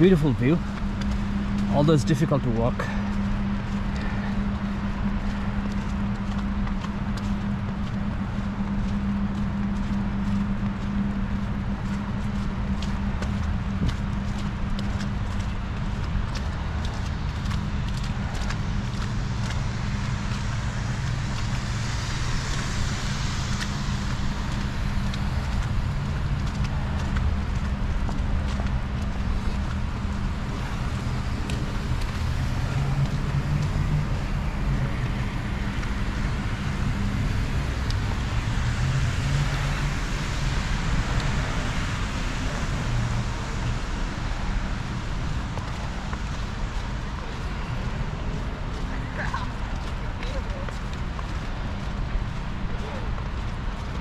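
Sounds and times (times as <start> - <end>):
footsteps in snow: 0.0 - 42.5
city traffic: 0.0 - 54.0
wind rumbling on microphone: 0.0 - 54.0.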